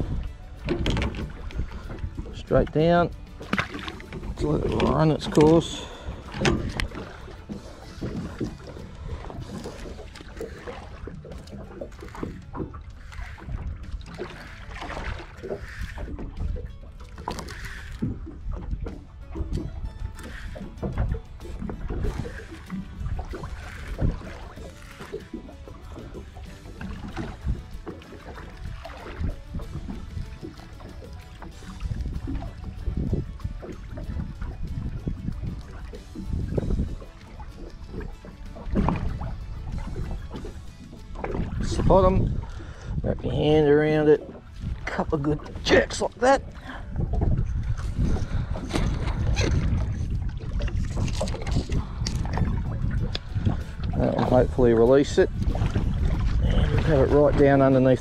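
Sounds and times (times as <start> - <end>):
background music: 0.0 - 58.0
water lapping against boat: 0.0 - 58.0
wind buffeting microphone: 0.0 - 58.0.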